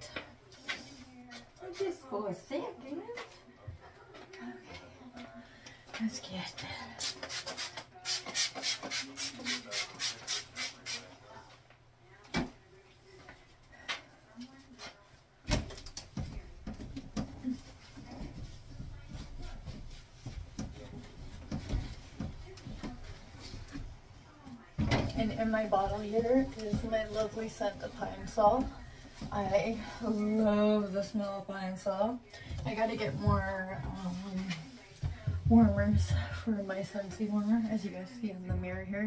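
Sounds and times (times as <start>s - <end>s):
trigger spray bottle spraying: 7.0s - 11.0s.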